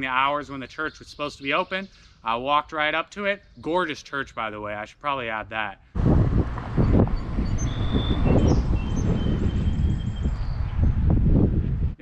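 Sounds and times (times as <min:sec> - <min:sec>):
birds chirping faintly: 0:00.0 - 0:05.6
wind rumbling on microphone: 0:06.0 - 0:12.0.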